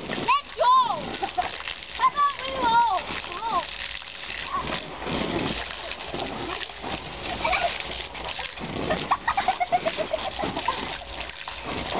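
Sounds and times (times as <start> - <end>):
water spraying onto trampoline: 0.0 - 11.9
child laughing: 7.4 - 7.8, 8.8 - 10.9.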